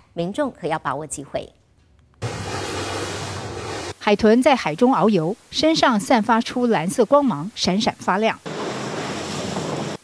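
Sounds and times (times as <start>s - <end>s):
wind and sea water rushing: 8.5s - 10.0s.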